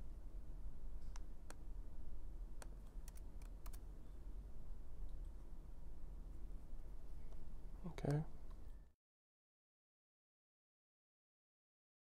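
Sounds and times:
low steady hum: 0:00.0 - 0:09.0.

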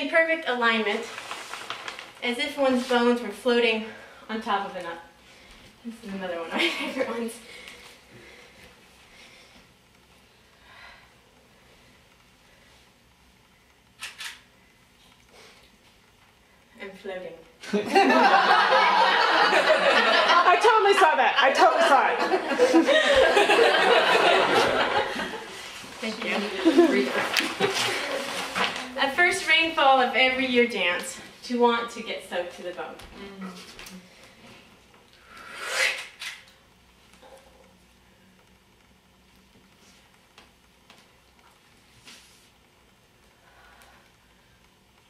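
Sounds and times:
camera shutter clicks: 0:14.0 - 0:14.4.

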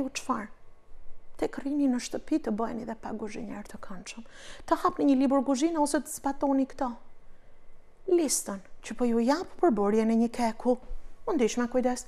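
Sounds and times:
people talking: 0:00.0 - 0:00.5, 0:01.4 - 0:07.0, 0:08.1 - 0:12.0
woman speaking: 0:00.0 - 0:00.6, 0:01.4 - 0:07.1, 0:08.0 - 0:12.0.

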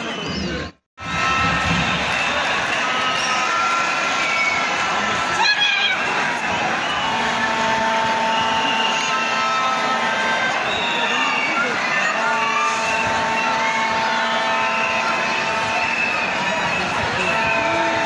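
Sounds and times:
crowd shouting and chattering: 0:00.0 - 0:18.0.

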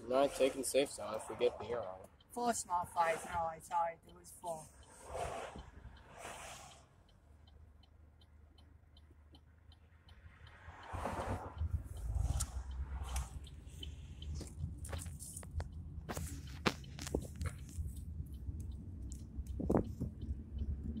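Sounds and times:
car rumble: 0:00.0 - 0:21.0
faint ticking: 0:00.0 - 0:21.0.

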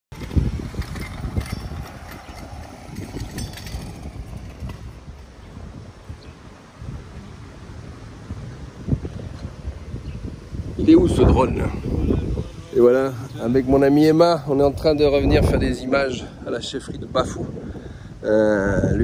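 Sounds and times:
wind buffeting microphone: 0:00.1 - 0:19.0
motorcycle engine running: 0:00.2 - 0:05.7.

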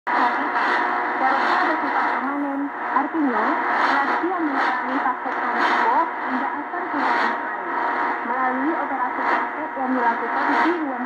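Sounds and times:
radio static hiss: 0:00.1 - 0:11.0
muffled radio voice speaking: 0:04.0 - 0:11.0.

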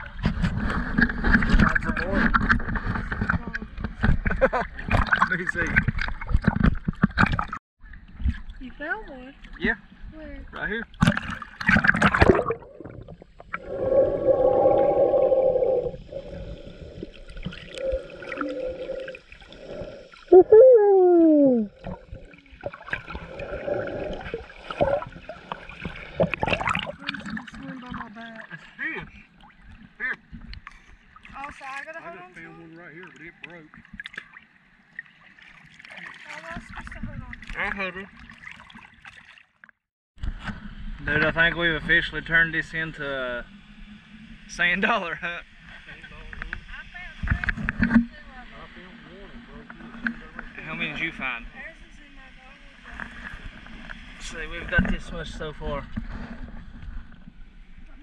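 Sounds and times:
muffled underwater gurgling: 0:12.1 - 0:28.1
seawater splashing and sloshing: 0:21.7 - 0:39.6.

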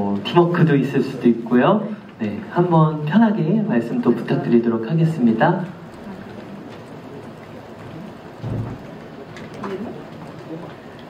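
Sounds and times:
hall room tone hiss: 0:00.0 - 0:11.0.

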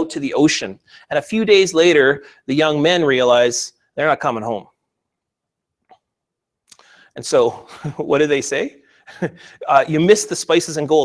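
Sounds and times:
faint mouth click: 0:06.7 - 0:06.9.

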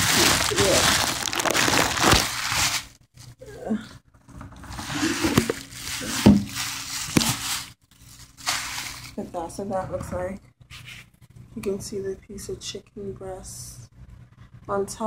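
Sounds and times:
plastic bag rustling and crinkling: 0:00.0 - 0:03.4, 0:04.6 - 0:09.6.

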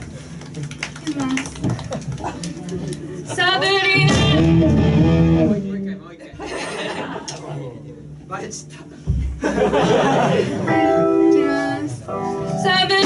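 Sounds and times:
electric guitar and keyboard: 0:04.0 - 0:05.7.

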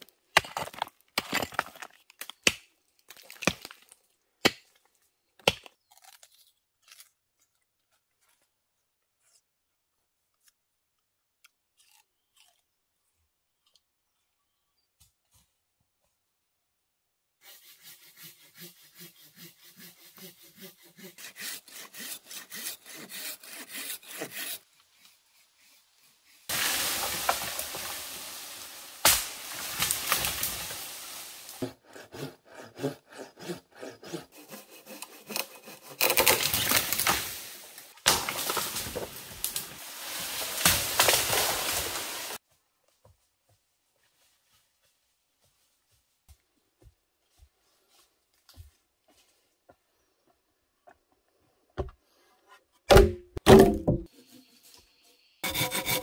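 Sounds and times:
hand saw cutting wood: 0:17.4 - 0:28.2, 0:31.5 - 0:37.2, 0:55.4 - 0:56.0.

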